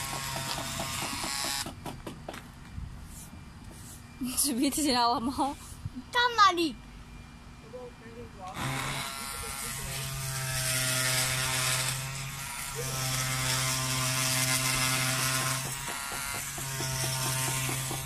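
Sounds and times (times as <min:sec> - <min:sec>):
oscillating multi-tool buzzing: 0:00.0 - 0:01.8, 0:08.5 - 0:18.0.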